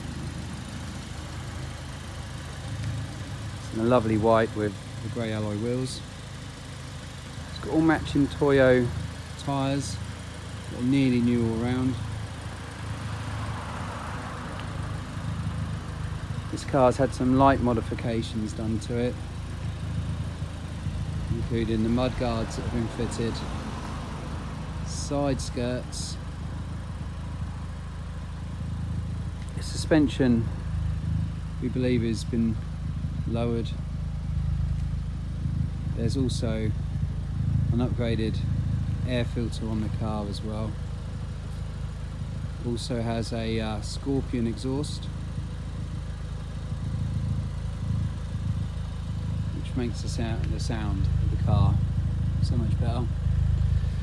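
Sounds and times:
car engine idling: 0.0 - 54.0.

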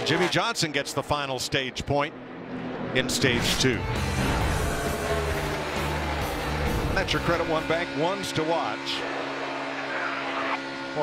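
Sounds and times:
race car engines droning: 0.0 - 11.0.

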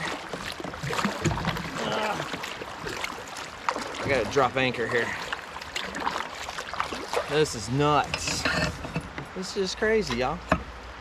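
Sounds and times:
water splashing beside kayak: 0.0 - 10.0
flowing river: 0.0 - 11.0.

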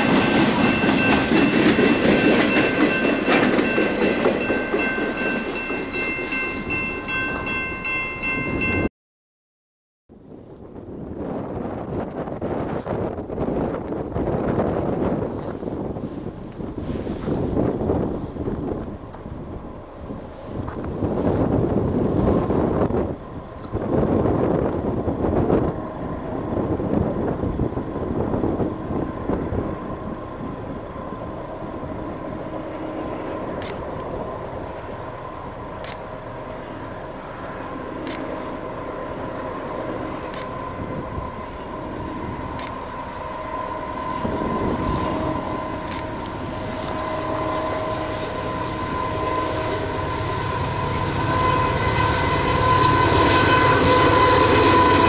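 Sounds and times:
diesel train drone: 0.0 - 8.9, 10.1 - 55.0
wind gusting on microphone: 10.1 - 55.0.

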